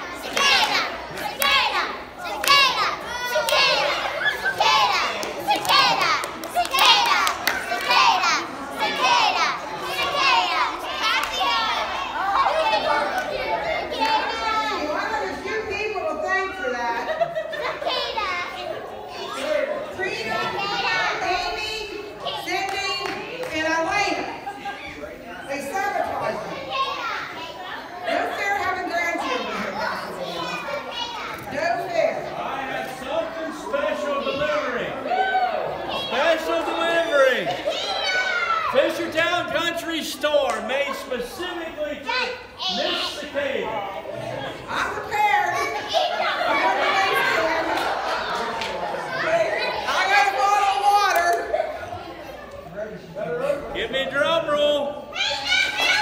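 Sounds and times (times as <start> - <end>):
children shouting and cheering: 0.0 - 31.6, 32.4 - 39.1, 41.8 - 52.7, 55.0 - 56.0
hand clapping: 2.4 - 3.8, 4.5 - 8.2.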